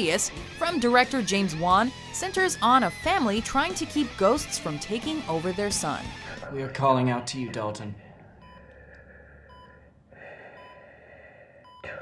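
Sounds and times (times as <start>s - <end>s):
raspy breathing through gas mask: 8.0s - 11.8s.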